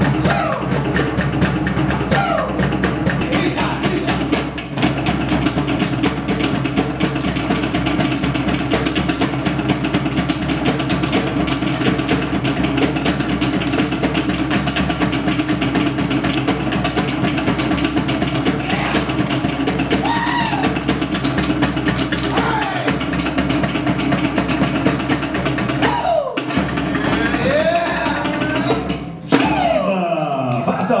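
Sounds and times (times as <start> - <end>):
fast drum rhythm: 0.0 - 31.0.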